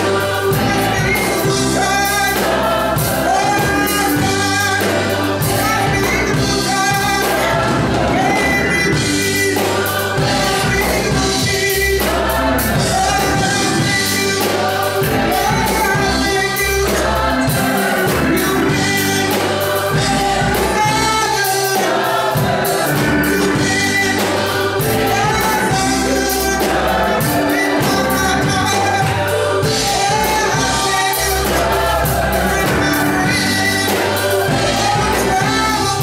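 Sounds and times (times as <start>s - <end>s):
bass line: 0.0s - 36.0s
drum kit with cymbals: 0.0s - 36.0s
gospel choir singing: 0.0s - 36.0s.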